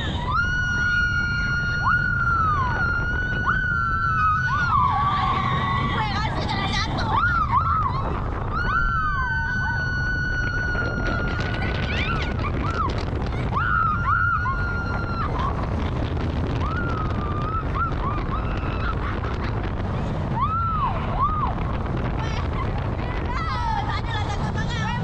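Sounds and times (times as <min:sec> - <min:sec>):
women screaming: 0:00.0 - 0:15.8, 0:16.4 - 0:19.6, 0:20.3 - 0:21.8
rollercoaster rumble: 0:00.0 - 0:25.0.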